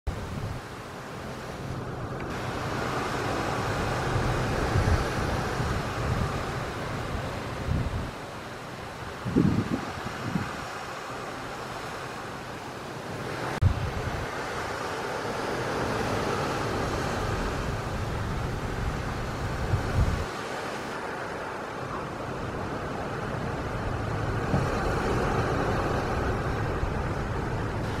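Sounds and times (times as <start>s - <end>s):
rush of sea and ship noise: 0.1s - 28.0s
wind buffeting microphone: 1.7s - 12.0s, 13.2s - 28.0s.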